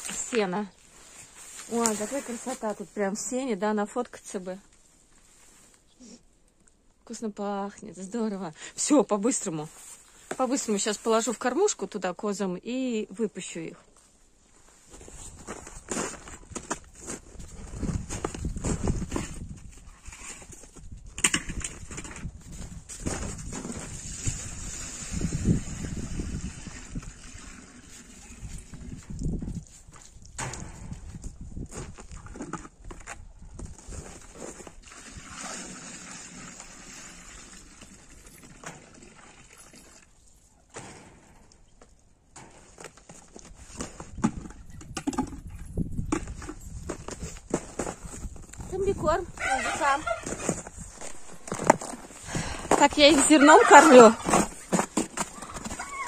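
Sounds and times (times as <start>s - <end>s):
footsteps in snow: 0.0s - 3.2s, 46.8s - 56.0s
plastic tub being handled: 46.1s - 56.0s.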